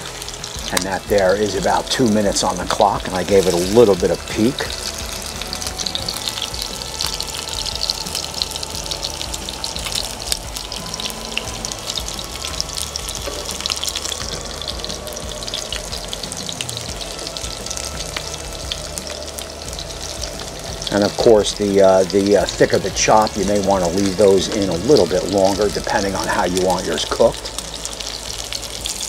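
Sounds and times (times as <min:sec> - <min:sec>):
meat sizzling in hot oil: 0:00.0 - 0:29.0.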